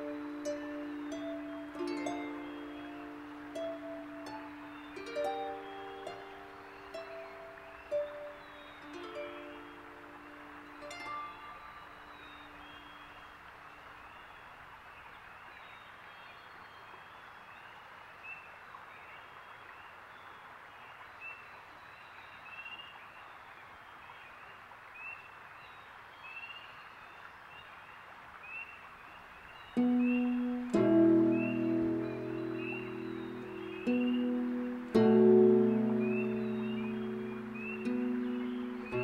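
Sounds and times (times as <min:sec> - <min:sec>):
steady soft hiss: 0:00.0 - 0:39.0.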